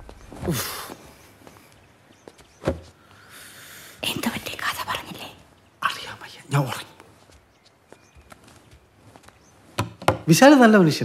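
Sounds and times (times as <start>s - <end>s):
faint hiss: 2.9s - 7.1s
person whispering: 4.0s - 7.1s.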